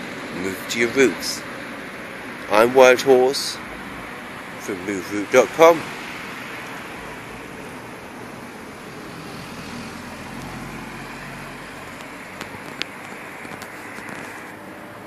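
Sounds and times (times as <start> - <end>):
road traffic noise: 0.0 - 15.0.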